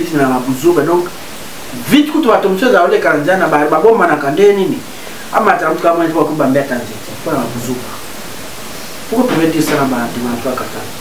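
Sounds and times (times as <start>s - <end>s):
man speaking: 0.0s - 8.1s, 9.1s - 11.0s
steady background hiss: 0.0s - 11.0s.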